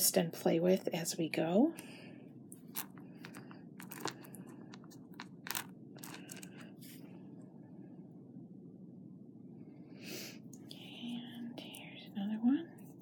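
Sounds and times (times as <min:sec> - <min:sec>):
clicks of wire and beads handled: 0:02.5 - 0:06.6.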